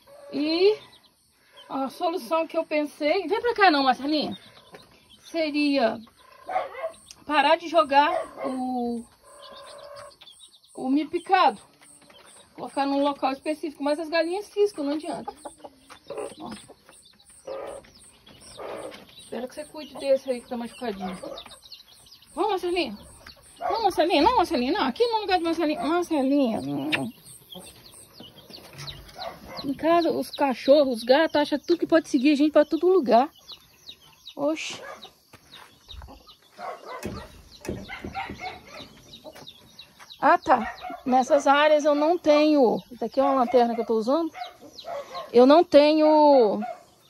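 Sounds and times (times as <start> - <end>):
hen clucking: 0.0 - 46.6
chicks peeping: 0.0 - 47.0
sharp knocks: 37.0 - 38.5.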